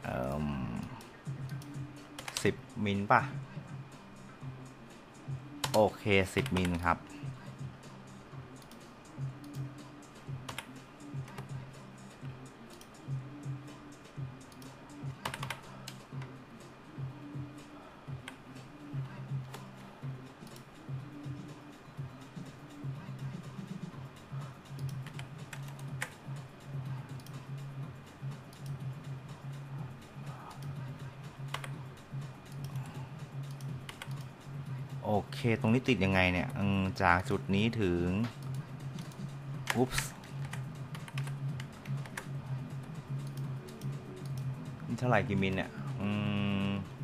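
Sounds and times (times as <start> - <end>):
low background music: 0.0 - 47.0
keyboard and mouse clicks: 0.8 - 2.6, 5.6 - 6.8, 10.4 - 11.5, 14.4 - 16.3, 20.4 - 20.7, 24.7 - 26.2, 31.5 - 31.8, 32.4 - 34.3, 38.2 - 42.3.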